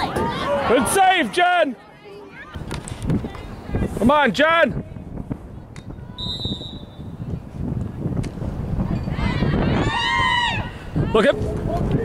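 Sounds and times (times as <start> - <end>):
outdoor field noise: 0.0 - 12.0
referee's whistle blast: 6.2 - 7.1.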